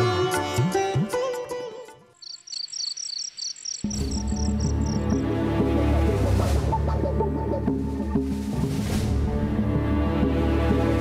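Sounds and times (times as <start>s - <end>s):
rapid high chirps: 2.2s - 5.2s
low droning background music: 3.8s - 11.0s.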